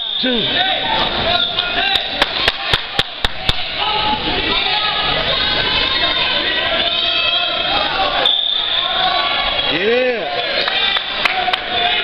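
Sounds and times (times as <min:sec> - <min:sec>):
crowd chatter: 0:00.0 - 0:12.0
hand claps: 0:02.2 - 0:03.6.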